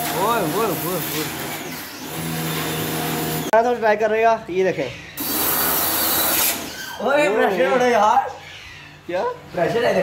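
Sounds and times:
pressure washer motor humming: 0.0 - 3.5, 5.2 - 6.7
people talking: 0.1 - 1.3.

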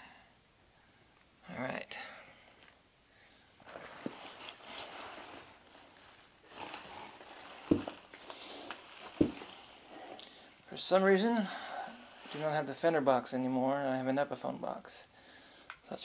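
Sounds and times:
rustling packaging handling: 3.6 - 10.6.

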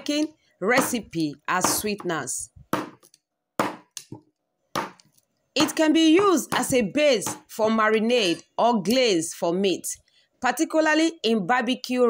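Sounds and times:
knife chopping sugarcane on wood: 2.7 - 5.8.

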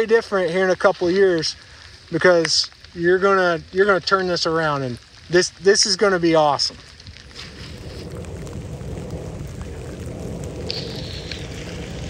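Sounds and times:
light rain patter: 0.0 - 12.0
wind rumbling on microphone: 5.9 - 12.0.

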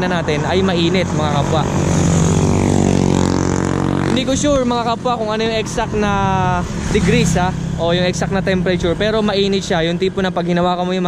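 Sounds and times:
vehicle passing by: 0.0 - 10.6.

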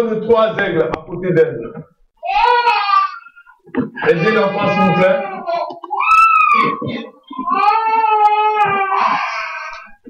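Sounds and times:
person wailing: 4.0 - 9.8.

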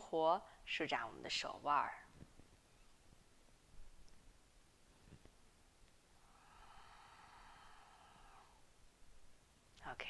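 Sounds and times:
faint soft breath: 6.1 - 8.8.

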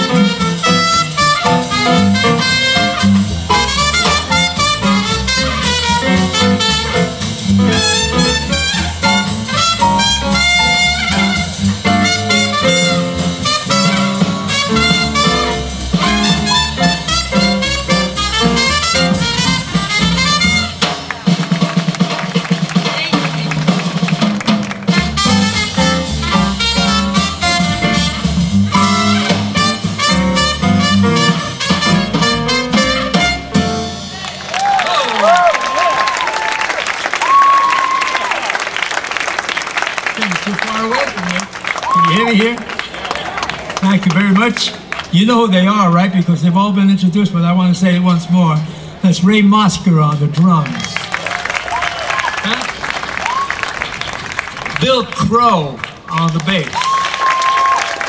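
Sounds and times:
upright double bass: 0.0 - 34.8
drum kit: 0.0 - 35.8
trumpet lead: 0.0 - 36.2.

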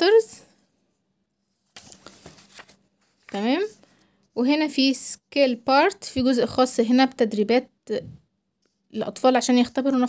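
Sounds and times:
book page rustling: 1.4 - 4.1.

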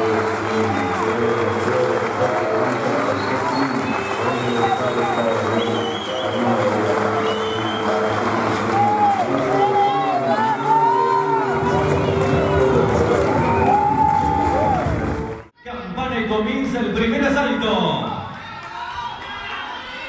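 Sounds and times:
crowd voices calling out: 0.0 - 15.4
loud entrance music: 6.4 - 15.6.

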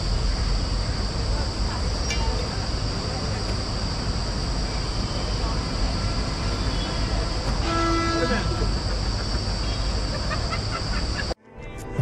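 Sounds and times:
roadside traffic rumble: 0.0 - 11.4
vehicle horn dropping in pitch: 6.0 - 8.8.

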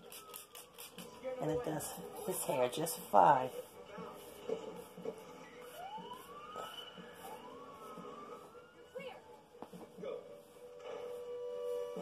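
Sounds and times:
faint siren wail: 0.0 - 3.1, 3.9 - 12.0.

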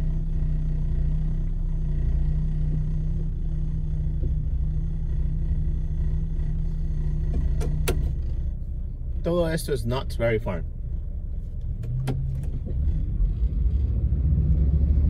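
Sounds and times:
car engine idling: 0.0 - 14.2.

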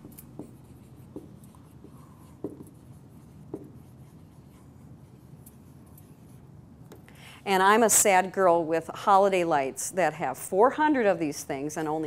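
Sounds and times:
marker writing on whiteboard: 0.0 - 7.0
marker tip tapping board: 0.4 - 2.8, 3.4 - 3.8.

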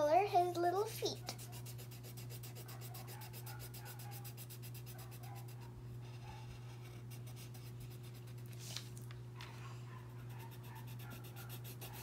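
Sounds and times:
steady low hum: 0.0 - 12.0
pencil shading on paper: 1.4 - 8.4, 10.2 - 12.0.

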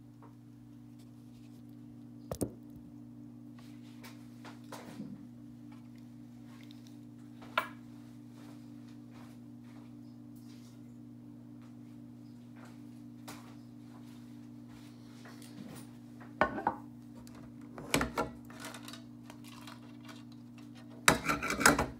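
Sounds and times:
low electrical hum: 0.0 - 21.9.

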